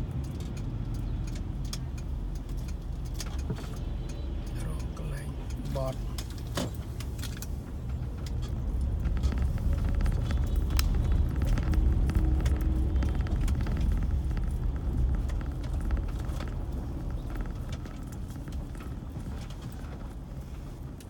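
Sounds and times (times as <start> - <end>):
vehicle road noise on dirt street: 0.0 - 21.0
small rattles and clicks: 0.1 - 21.0.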